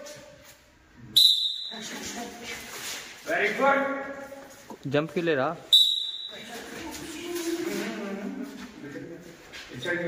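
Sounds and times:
coach's whistle blast: 1.1 - 1.9, 5.7 - 6.4.

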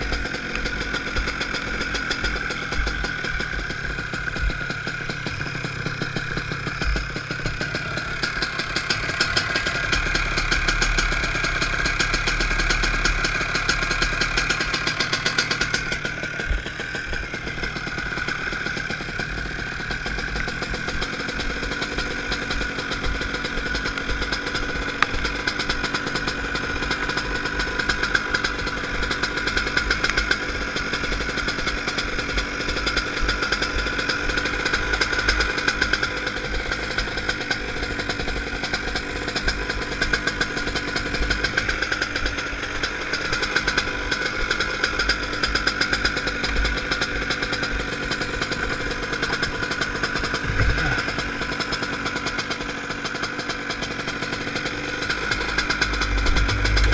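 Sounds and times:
kart engine idling: 0.0 - 56.9.

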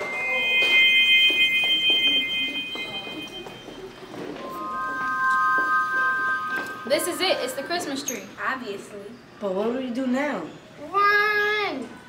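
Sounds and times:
high bell-like chime: 0.0 - 8.5.

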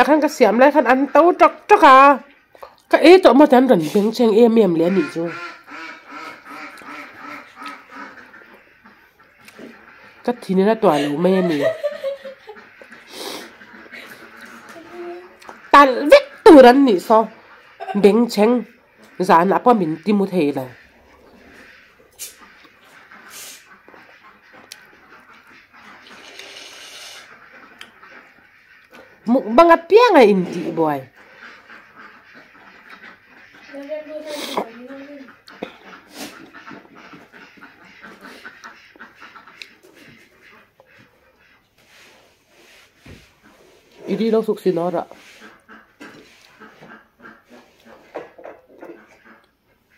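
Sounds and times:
duck quacking: 0.0 - 2.4, 3.5 - 42.8, 43.4 - 49.9
wet chewing: 6.5 - 8.3, 23.9 - 28.1.

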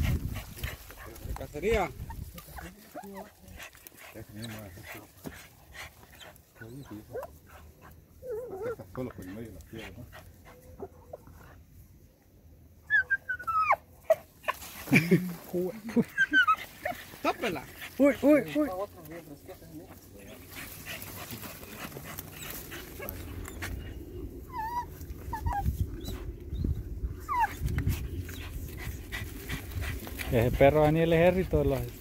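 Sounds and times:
dog paws scratching dirt: 0.0 - 10.8, 14.1 - 26.5, 27.1 - 32.0
dog whining and yelping: 8.2 - 8.9, 12.9 - 14.6, 16.0 - 17.0, 22.4 - 28.5.

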